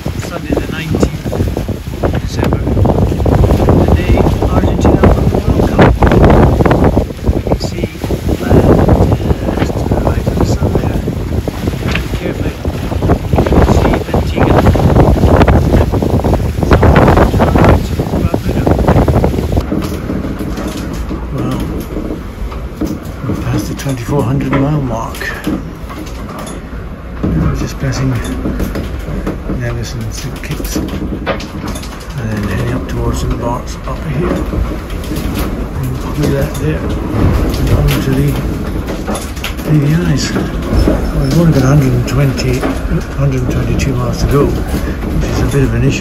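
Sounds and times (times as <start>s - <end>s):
man talking: 0.0s - 1.4s, 2.1s - 2.8s, 3.6s - 6.3s, 7.4s - 11.2s, 11.9s - 14.9s, 17.2s - 19.0s, 21.3s - 21.8s, 23.2s - 25.6s, 27.2s - 28.5s, 29.1s - 30.9s, 32.1s - 34.6s, 35.7s - 38.6s, 39.6s - 46.0s
low rumble: 0.0s - 46.0s
waves rushing along hull: 0.0s - 46.0s
wind buffeting microphone: 0.0s - 46.0s.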